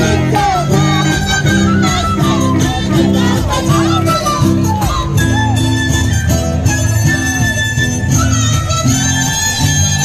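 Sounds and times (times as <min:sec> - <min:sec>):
carnival dance music: 0:00.0 - 0:10.0.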